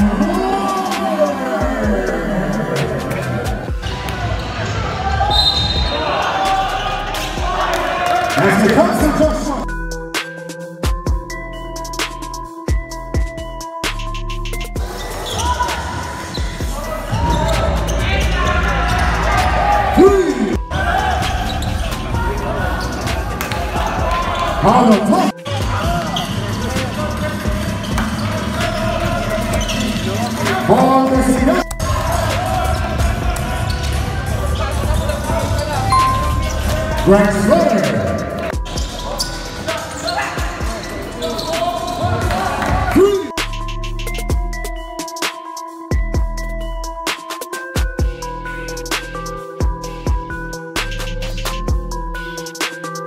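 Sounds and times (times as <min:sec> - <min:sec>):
voices: 0:00.0 - 0:09.6
players' voices: 0:00.0 - 0:09.8, 0:14.8 - 0:43.4
hip-hop beat music: 0:00.0 - 0:53.0.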